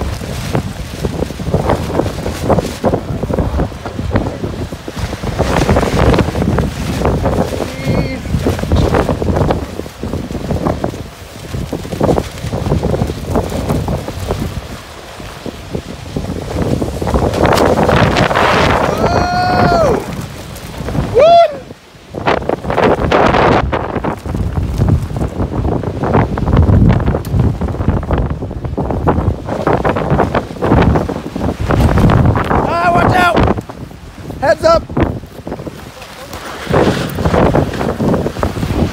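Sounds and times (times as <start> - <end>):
wind gusts buffeting microphone: 0.0 - 38.9.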